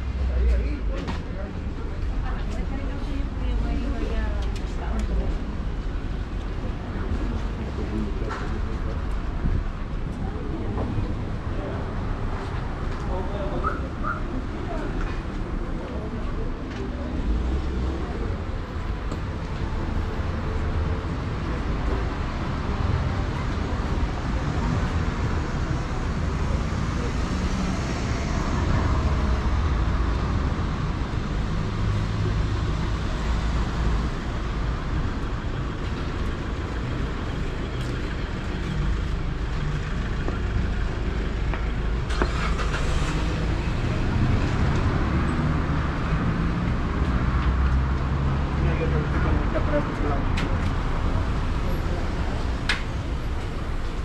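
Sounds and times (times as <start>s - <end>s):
passers-by voices: 0.0s - 54.0s
traffic rumble: 0.0s - 54.0s.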